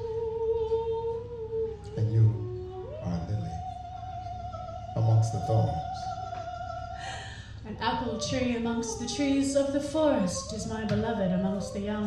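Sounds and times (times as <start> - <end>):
woman singing a long note: 0.0 - 12.0.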